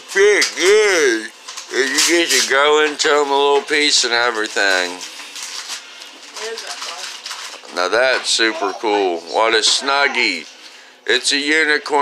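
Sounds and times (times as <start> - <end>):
wrapping paper rustling: 0.0 - 10.8.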